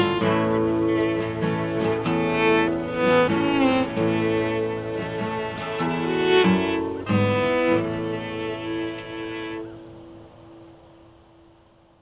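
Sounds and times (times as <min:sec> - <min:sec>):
guitar and fiddle held note: 0:00.0 - 0:09.8.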